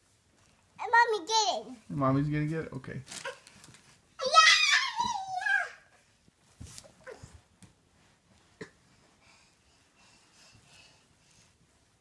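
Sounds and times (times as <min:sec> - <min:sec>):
toddler wailing: 0:04.2 - 0:05.9.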